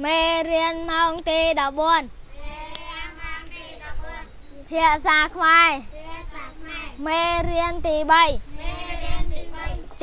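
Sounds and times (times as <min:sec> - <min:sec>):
children chanting a lesson: 0:00.0 - 0:10.0.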